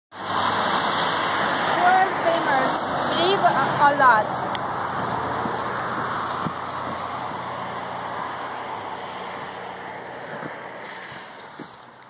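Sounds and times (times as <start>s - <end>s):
tyres hissing on wet road: 0.2s - 12.0s
faint footsteps: 4.4s - 12.0s.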